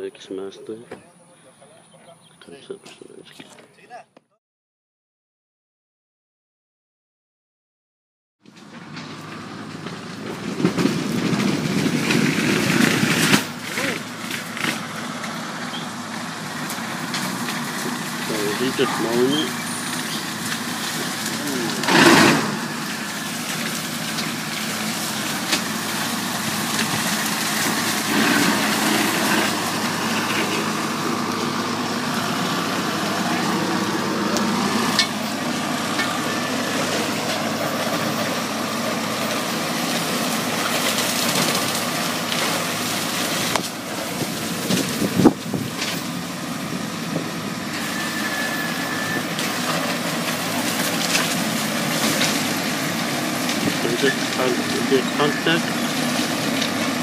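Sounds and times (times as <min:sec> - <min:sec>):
tractor engine mowing grass: 0:08.4 - 0:57.0
loud short burst: 0:21.6 - 0:22.9.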